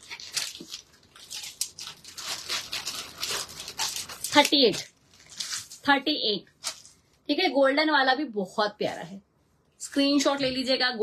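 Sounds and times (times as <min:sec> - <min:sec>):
packaging and fabric rustling: 0:00.0 - 0:05.9.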